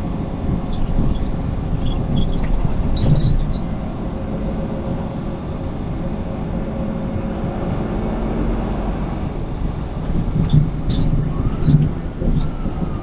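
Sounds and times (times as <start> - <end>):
bus engine rumble inside cabin: 0.0 - 13.0.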